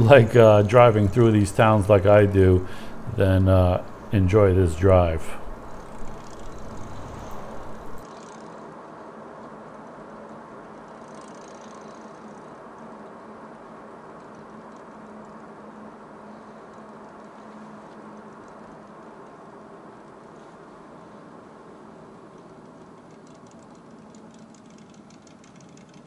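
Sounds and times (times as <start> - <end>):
faint engine hum: 0.0 - 26.0
car road noise from inside: 5.3 - 8.0.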